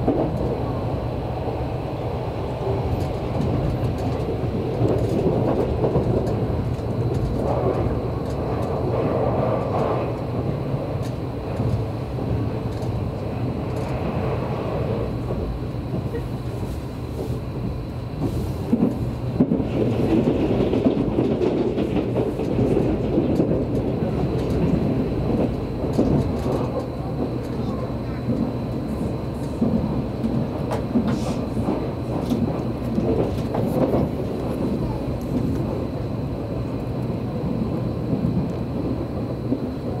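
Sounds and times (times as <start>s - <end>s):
train running gear rumble: 0.0s - 40.0s.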